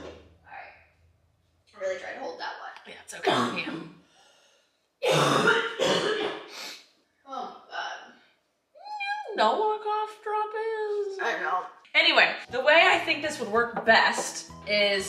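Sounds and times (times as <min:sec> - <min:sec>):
person coughing: 0:03.2 - 0:03.9, 0:05.0 - 0:06.6.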